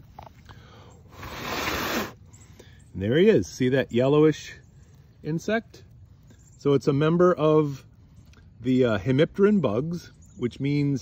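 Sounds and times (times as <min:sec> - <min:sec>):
person blowing air: 0:01.1 - 0:02.2.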